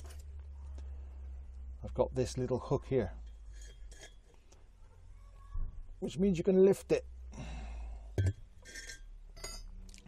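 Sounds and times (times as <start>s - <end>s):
faint metallic clinks: 8.2s - 10.0s.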